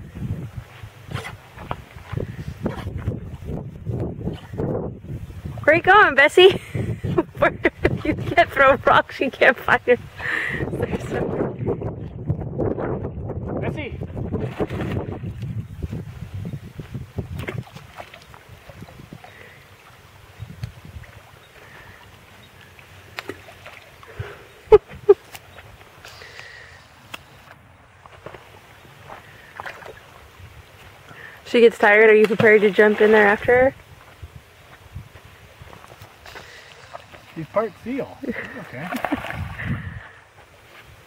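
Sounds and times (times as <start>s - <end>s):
wind rumble on microphone: 0.0s - 22.0s, 33.2s - 37.8s, 39.0s - 40.2s.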